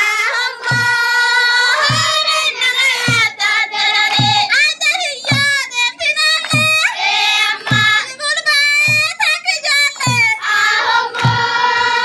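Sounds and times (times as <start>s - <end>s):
students singing: 0.0s - 4.5s, 6.9s - 8.1s, 10.4s - 12.0s
low thump beat: 0.6s - 1.1s, 1.8s - 2.3s, 3.0s - 3.4s, 4.0s - 4.5s, 7.6s - 8.1s, 11.1s - 12.0s.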